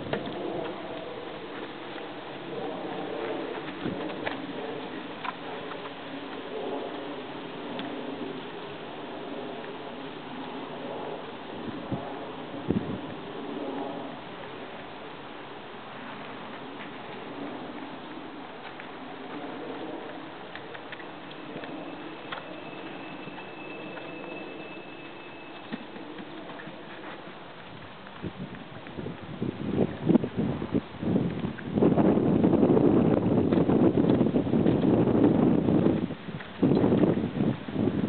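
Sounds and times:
horse hoofbeats on sand: 0:00.0 - 0:15.0, 0:15.9 - 0:38.0
wind on microphone: 0:00.0 - 0:15.0, 0:25.7 - 0:38.0
steady outdoor hiss: 0:00.0 - 0:38.0.

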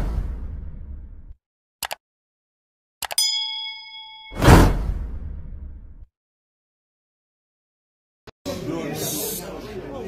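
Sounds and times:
notification bell ding: 0:03.1 - 0:04.6.

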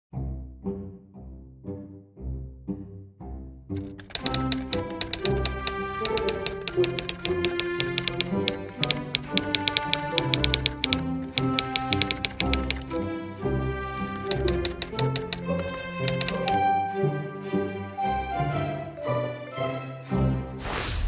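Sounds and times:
typewriter key clicks: 0:03.8 - 0:13.1, 0:14.0 - 0:16.6
background music with sustained tones: 0:16.1 - 0:20.6.

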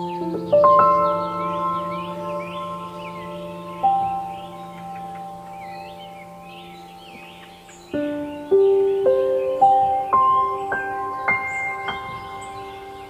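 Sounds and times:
birds chirping: 0:00.0 - 0:13.0
calm bell-like mallet music: 0:00.0 - 0:13.0.

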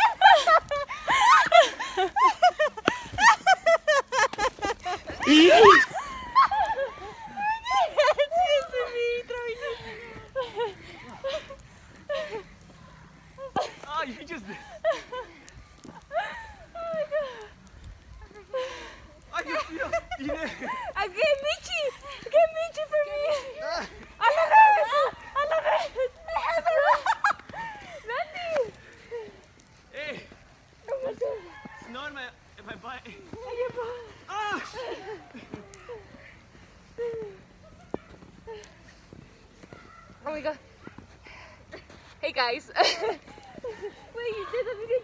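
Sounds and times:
young women shouting and squealing: 0:05.0 - 0:14.0, 0:19.2 - 0:29.8, 0:30.7 - 0:31.9, 0:43.1 - 0:45.0.

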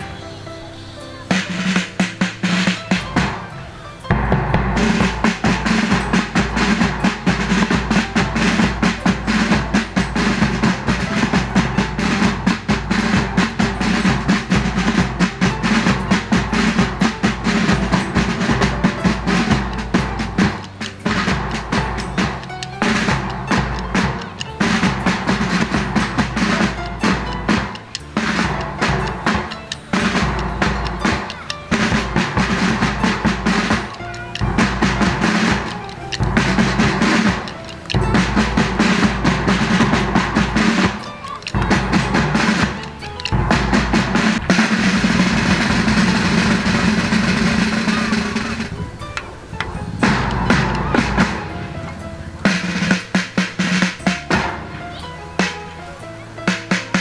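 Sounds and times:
side drums rolling: 0:00.0 - 0:57.0
bass drum beats: 0:01.3 - 0:57.0.

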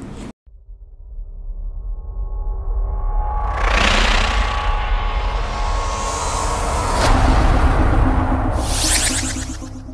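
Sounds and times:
sharp impact hit: 0:03.0 - 0:09.9.

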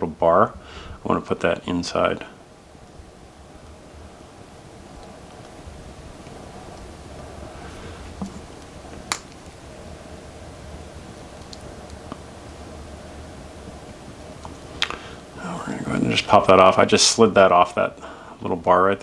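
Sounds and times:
low room hum: 0:00.0 - 0:19.0.

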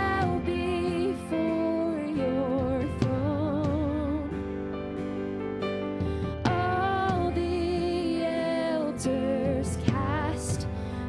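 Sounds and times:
woman singing worship song: 0:00.0 - 0:04.5, 0:06.4 - 0:11.0
soft instrumental accompaniment: 0:00.0 - 0:11.0.

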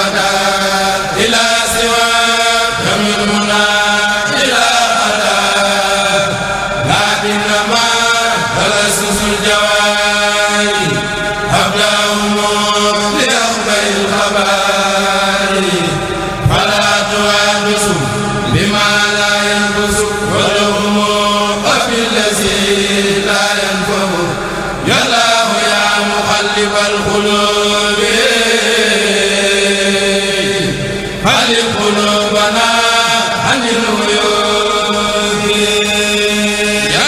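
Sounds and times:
men chanting in unison: 0:00.0 - 0:37.0.

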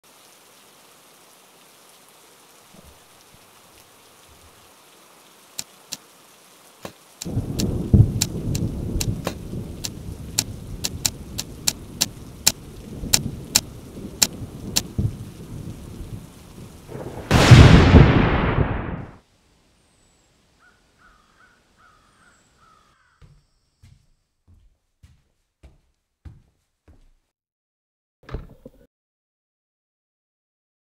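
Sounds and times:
rain: 0:00.0 - 0:22.9
loud thunderclap: 0:07.3 - 0:12.1, 0:12.9 - 0:19.2
low rolling thunder: 0:07.3 - 0:19.2.

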